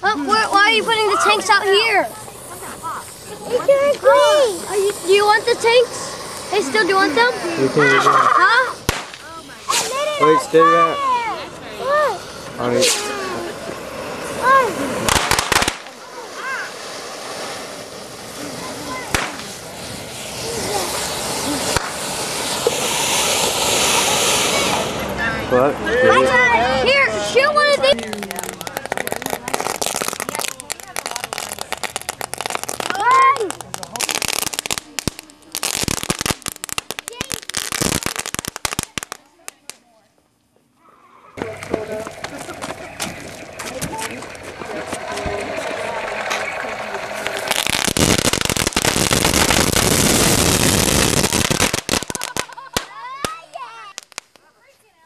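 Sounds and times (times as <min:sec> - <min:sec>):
fireworks crackling pops: 0:00.0 - 0:25.5, 0:26.9 - 0:40.6, 0:41.4 - 0:55.0
fireworks hissing: 0:00.0 - 0:55.0.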